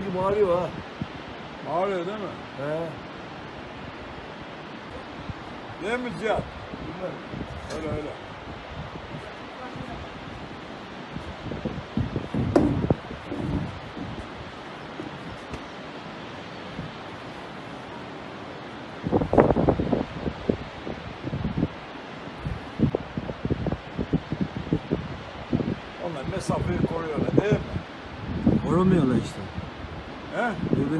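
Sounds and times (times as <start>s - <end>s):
rushing hiss of open air: 0.0s - 30.9s
wind buffeting microphone: 0.0s - 30.9s.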